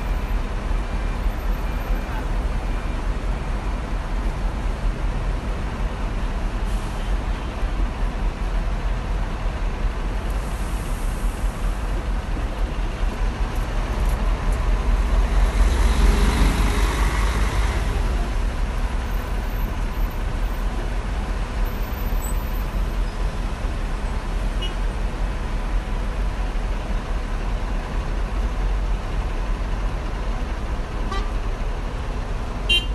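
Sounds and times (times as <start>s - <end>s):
bus engine idling: 0.0s - 32.9s
traffic noise: 0.0s - 32.9s.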